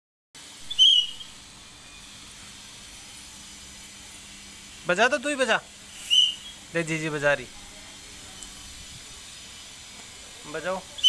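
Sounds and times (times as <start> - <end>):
toy whistle toot: 0.6 - 2.2, 6.0 - 6.6.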